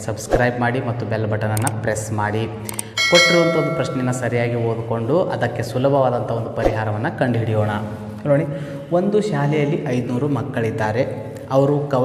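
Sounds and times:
man talking: 0:03.1 - 0:12.0.

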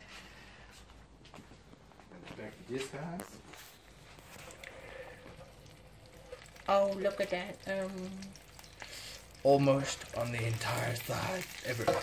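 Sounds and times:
meatballs sizzling in oil: 0:03.9 - 0:12.0.

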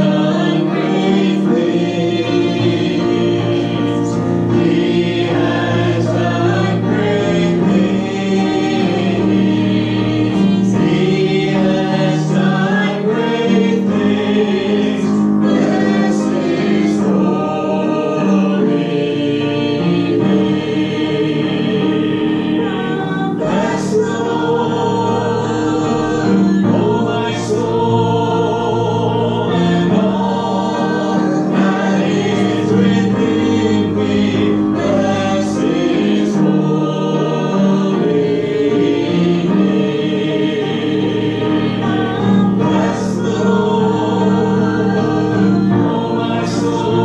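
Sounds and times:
congregation singing a hymn: 0:00.0 - 0:47.0.

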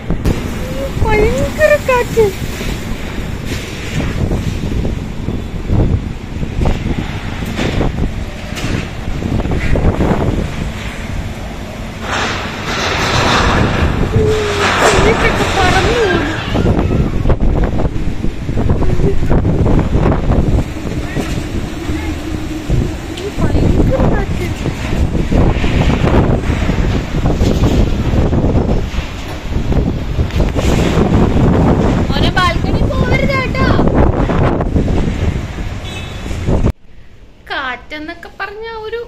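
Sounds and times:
storm wind gusting on microphone: 0:00.0 - 0:39.0.

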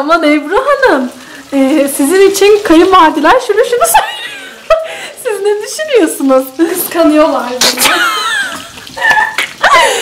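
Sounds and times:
woman's laughing exclamations: 0:07.8 - 0:10.0.

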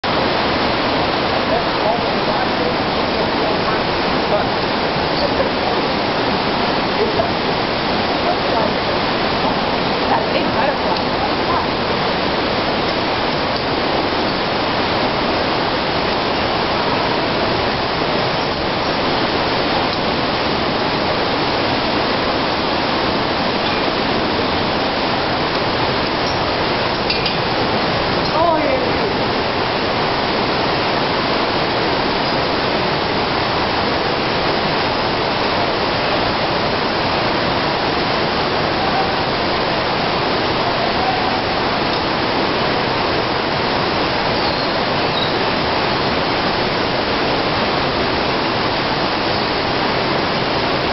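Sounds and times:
rush of falling water: 0:00.0 - 0:50.9.

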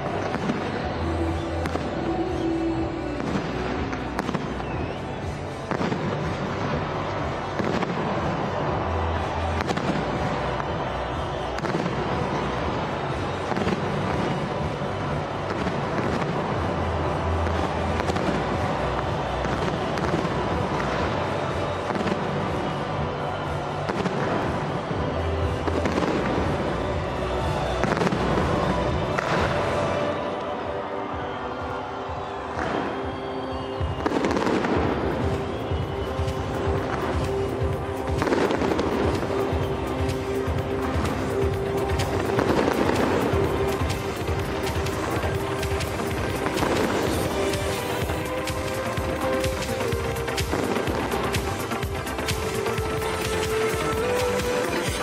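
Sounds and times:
fireworks crackling and popping: 0:00.0 - 0:30.6, 0:31.2 - 0:55.0
fireworks launching and bursting: 0:00.0 - 0:55.0
loud music with deep bass: 0:00.0 - 0:55.0.

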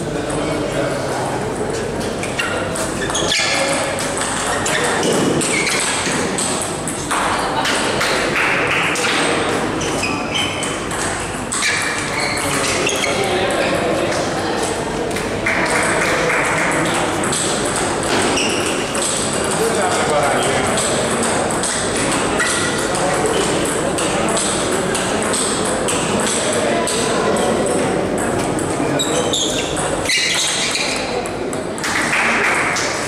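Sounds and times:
murmur of voices: 0:00.0 - 0:33.0
table tennis balls tapping: 0:02.2 - 0:33.0.

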